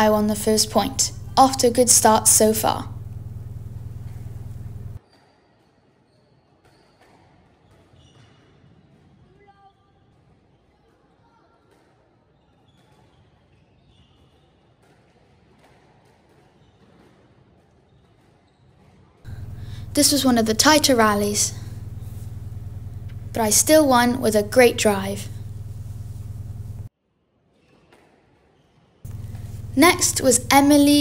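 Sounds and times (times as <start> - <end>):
low steady hum: 0.0 - 5.0, 19.3 - 26.9, 29.1 - 31.0.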